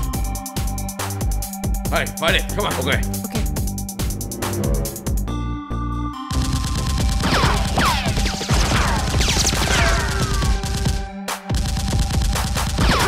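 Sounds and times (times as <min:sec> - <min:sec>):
action background music: 0:00.0 - 0:13.0
falling whizzing tones: 0:04.0 - 0:05.4
rapid gunfire sound effects: 0:06.3 - 0:13.0.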